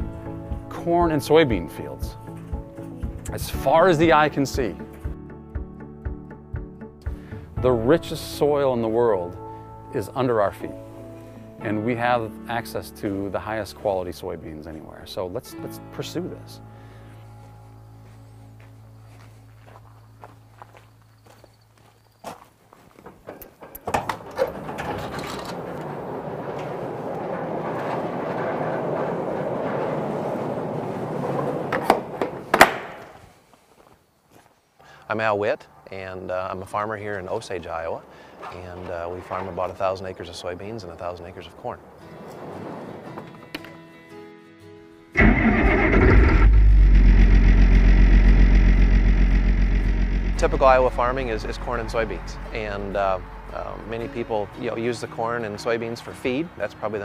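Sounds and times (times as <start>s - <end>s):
footsteps on gravel: 17.3s - 23.2s, 33.2s - 34.6s
sliding steel door rumbling: 23.6s - 32.6s, 45.2s - 52.4s
tractor diesel engine running: 45.2s - 53.8s.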